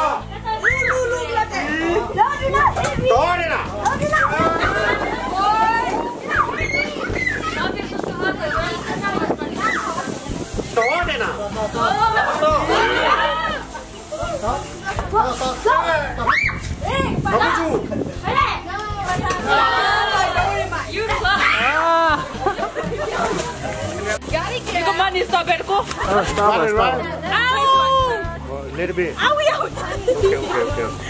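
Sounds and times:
children shouting excitedly: 0.0s - 3.2s, 4.0s - 13.7s, 15.8s - 22.3s
children shouting: 4.0s - 8.9s, 18.3s - 22.1s.

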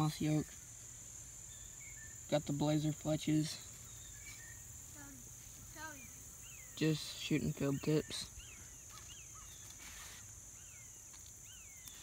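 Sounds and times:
falling bird chirps: 3.4s - 12.0s.

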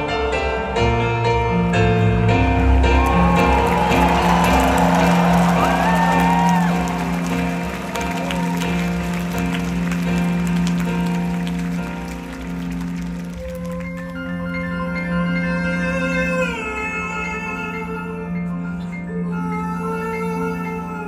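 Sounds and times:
grand piano chords: 0.0s - 21.0s
audience applauding and cheering: 2.6s - 14.4s.

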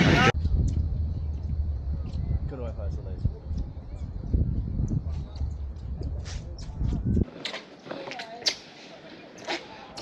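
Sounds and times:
wind buffeting microphone: 0.0s - 7.3s
faint voices: 2.6s - 10.0s.

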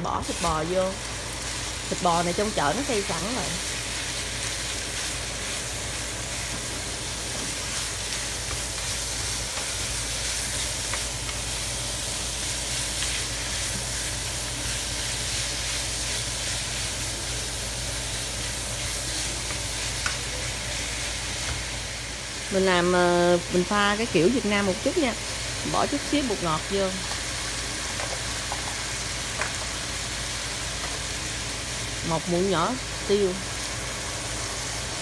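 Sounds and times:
meat sizzling in a skillet: 0.0s - 35.0s.

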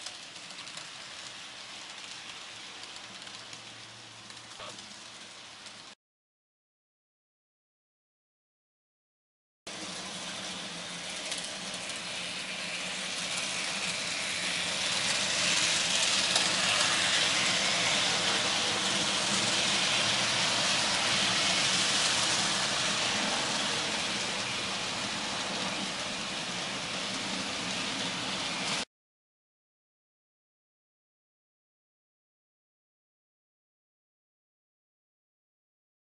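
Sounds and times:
model train wheels rolling on rail: 0.0s - 6.0s, 9.7s - 28.8s.

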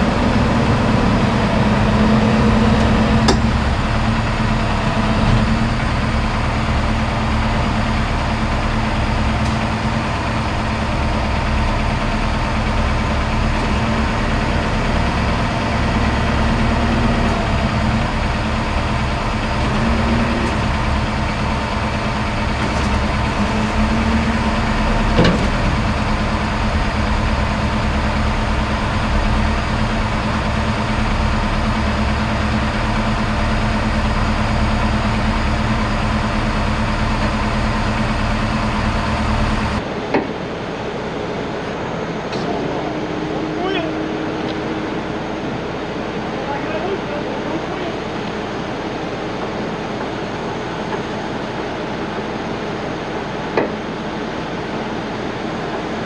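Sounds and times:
diesel engine under load: 0.0s - 56.0s.

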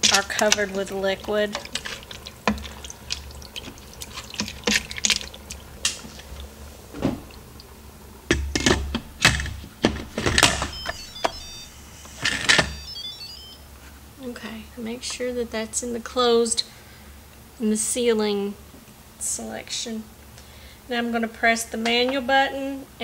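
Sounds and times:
electronic beeps jingle: 10.5s - 13.7s.

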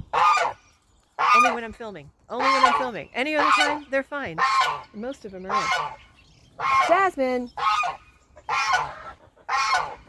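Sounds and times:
geese honking: 0.0s - 0.6s, 1.2s - 10.0s.

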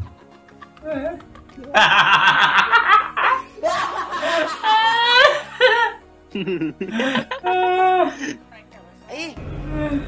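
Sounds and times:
hearty loud laughter: 0.0s - 7.6s.

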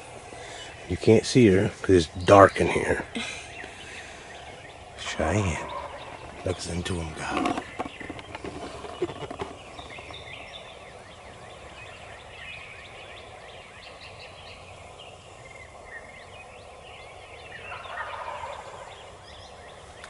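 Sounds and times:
turkey gobbling: 5.0s - 8.0s, 17.6s - 18.9s.

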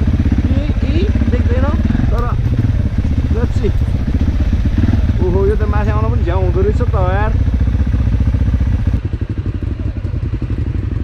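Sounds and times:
dirt bike engine rumbling: 0.0s - 11.0s.

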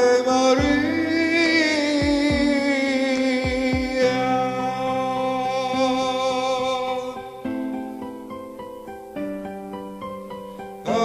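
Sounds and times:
person singing ballad: 0.0s - 8.6s, 9.2s - 11.0s.

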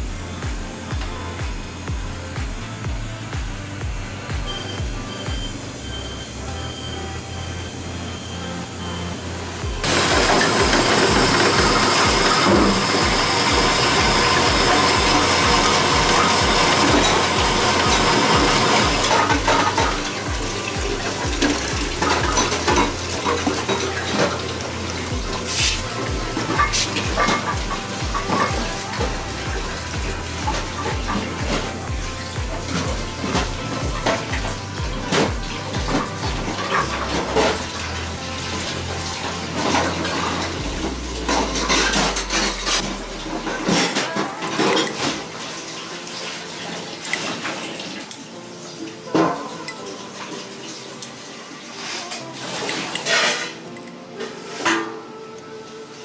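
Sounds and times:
dishes and utensils clinking: 9.8s - 51.2s, 51.8s - 55.5s
water running from a tap: 9.8s - 53.7s.

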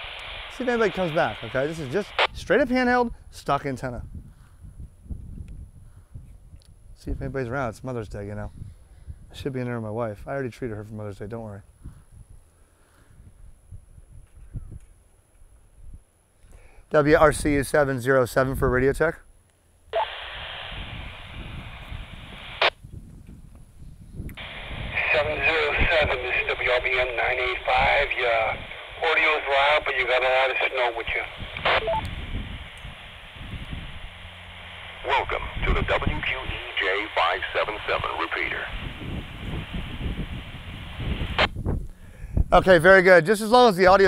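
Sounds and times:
static hiss: 0.0s - 2.8s, 20.0s - 22.8s, 24.4s - 43.6s
man's voice over radio speaker: 0.5s - 3.8s, 24.4s - 32.0s, 35.0s - 39.0s, 42.5s - 44.0s.

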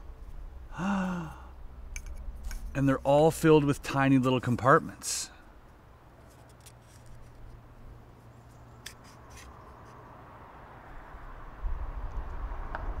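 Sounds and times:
wooden puzzle pieces rubbing: 6.2s - 7.6s.

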